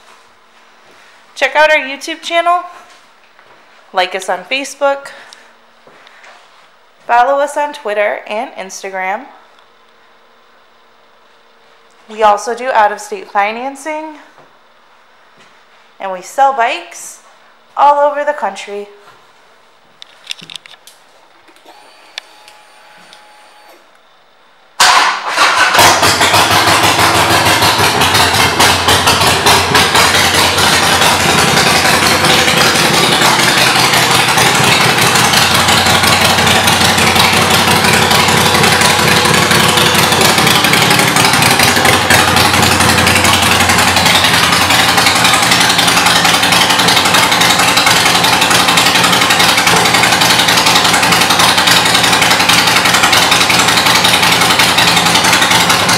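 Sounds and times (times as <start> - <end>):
motorcycle engine starting and idling: 24.8 - 55.9.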